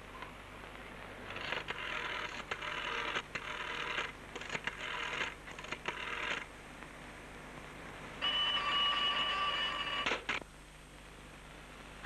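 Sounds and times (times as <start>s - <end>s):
rotary dial whirring back: 1.3s - 6.5s.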